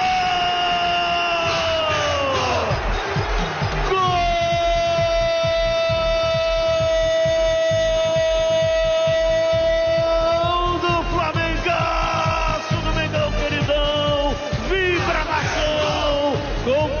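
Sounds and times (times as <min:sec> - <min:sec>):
radio narrator shouting goal cry: 0:00.0 - 0:02.9, 0:03.6 - 0:17.0.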